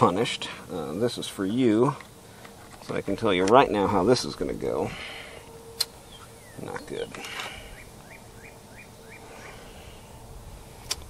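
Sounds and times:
faint steady hum: 0:00.0 - 0:11.0
bird chirping: 0:05.0 - 0:10.3
handling noises: 0:05.4 - 0:08.1
sharp click: 0:05.8 - 0:06.0.

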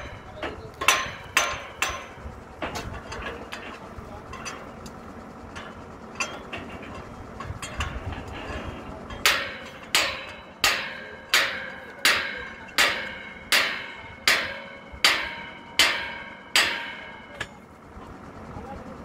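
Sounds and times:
hammer striking metal: 0:00.8 - 0:02.2, 0:09.1 - 0:17.6.

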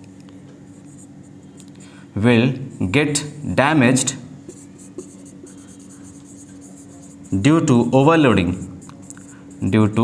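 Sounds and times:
faint steady hum: 0:00.0 - 0:10.0
marker scratching on whiteboard: 0:00.7 - 0:01.1, 0:04.4 - 0:10.0.

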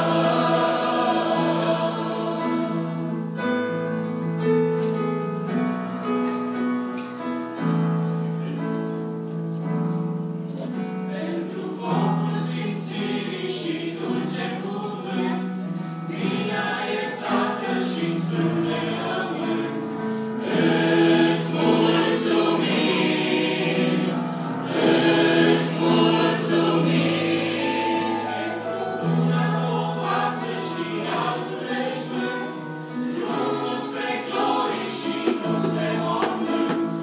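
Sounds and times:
mixed choir singing: 0:00.0 - 0:03.9, 0:11.0 - 0:37.0.

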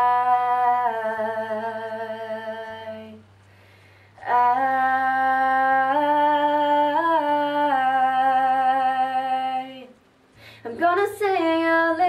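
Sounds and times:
faint backing track: 0:00.0 - 0:12.0.

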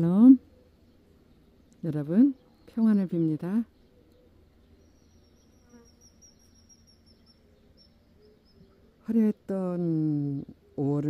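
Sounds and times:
faint garden ambience: 0:00.0 - 0:11.0.

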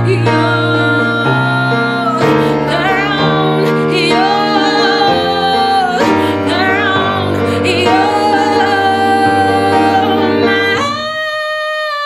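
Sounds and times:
piano chords: 0:00.0 - 0:11.3
woman singing slow song: 0:00.0 - 0:12.0.

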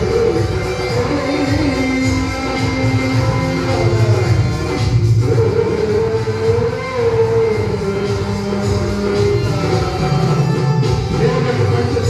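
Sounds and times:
live band on electronic keyboards: 0:00.0 - 0:12.0.

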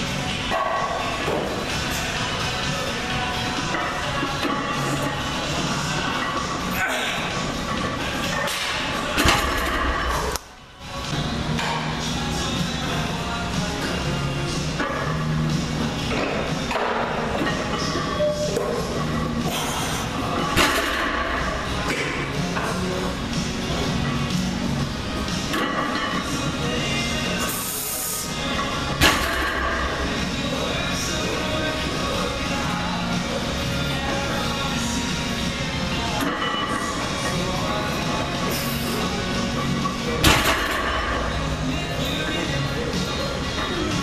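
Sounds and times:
background music: 0:00.0 - 0:44.0.

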